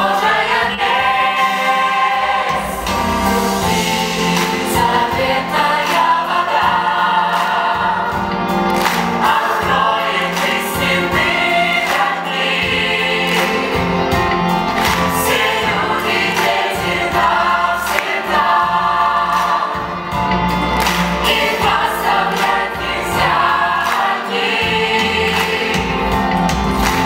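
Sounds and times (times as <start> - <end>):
musical accompaniment: 0.0 - 27.0.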